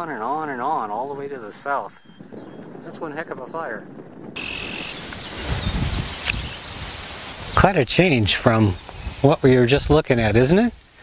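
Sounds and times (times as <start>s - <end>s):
wind buffeting microphone: 0.0s - 11.0s
wind through grass and leaves: 0.0s - 11.0s.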